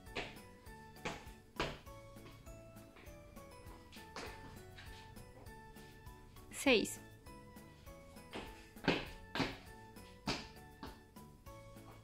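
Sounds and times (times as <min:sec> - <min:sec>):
feet landing on tiled floor: 0:00.0 - 0:02.4, 0:03.0 - 0:05.5, 0:08.2 - 0:11.2
background music: 0:00.0 - 0:12.0.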